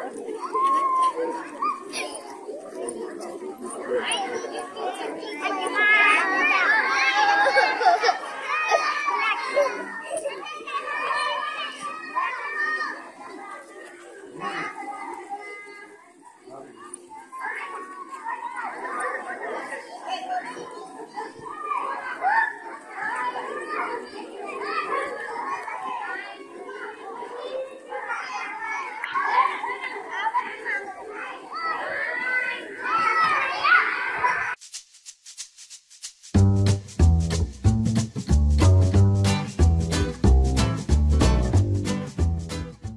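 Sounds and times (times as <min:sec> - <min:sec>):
young children chattering: 0:00.0 - 0:34.6
shaker rattle: 0:34.5 - 0:42.7.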